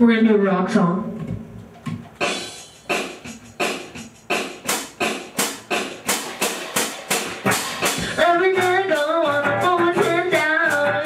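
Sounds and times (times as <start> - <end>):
drum kit rock beat: 1.2 - 11.0.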